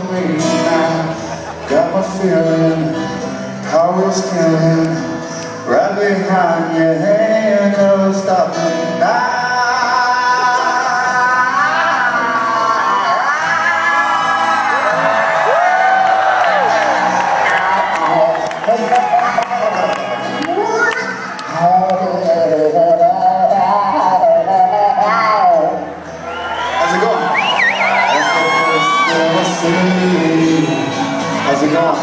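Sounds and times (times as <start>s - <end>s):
man singing long notes: 0.0s - 15.7s, 21.5s - 26.0s, 27.9s - 32.0s
acoustic guitars strumming: 0.0s - 32.0s
high vocal wail with vibrato: 27.9s - 30.2s.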